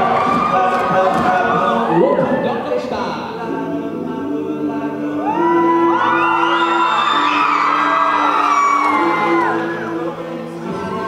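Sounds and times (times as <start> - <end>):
male a cappella group singing: 0.0 - 11.0
high voices sliding into long notes: 1.6 - 11.0.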